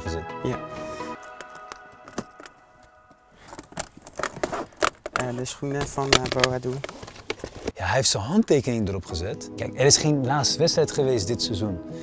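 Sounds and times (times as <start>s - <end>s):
case clicks and scrapes: 1.2s - 2.6s, 3.4s - 7.8s.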